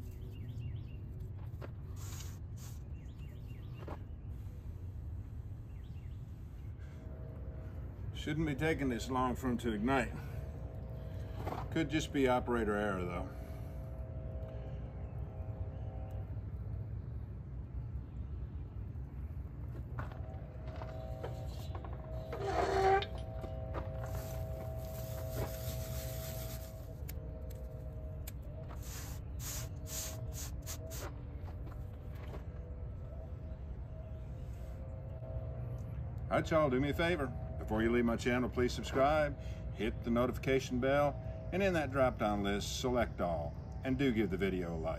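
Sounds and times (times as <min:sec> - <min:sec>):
low steady rumble: 0:00.0 - 0:44.9
tinder crackling: 0:19.7 - 0:31.1
rushing hiss of blown fire: 0:28.8 - 0:31.0.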